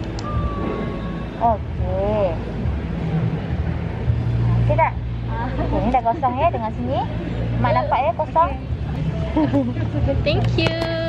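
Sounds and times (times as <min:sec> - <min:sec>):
steady low hum: 0:00.0 - 0:10.4.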